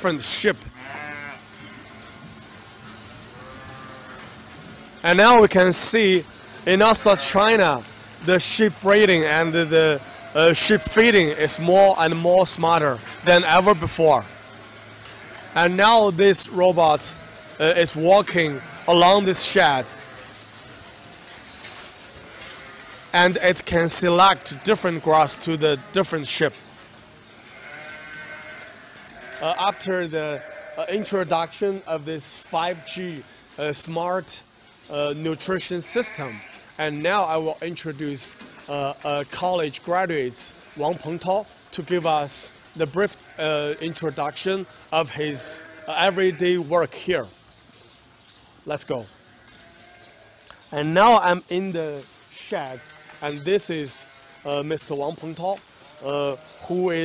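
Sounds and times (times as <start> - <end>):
sheep bleating: 0.0 - 21.4, 22.1 - 26.5, 27.4 - 33.3, 35.1 - 37.4, 42.3 - 46.7, 49.3 - 57.0
low shed noise: 0.0 - 57.0.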